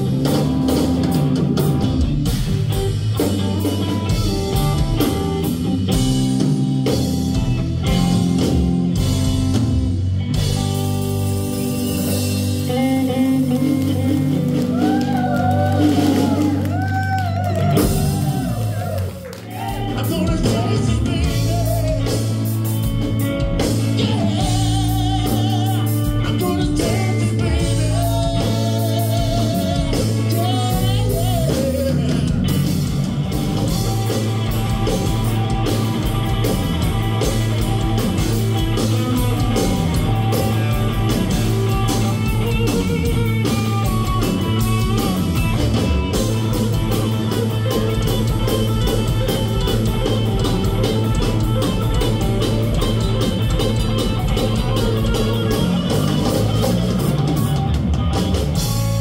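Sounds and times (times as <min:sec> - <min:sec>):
bass line: 0:00.0 - 0:59.0
blues-funk band playing: 0:00.0 - 0:59.0.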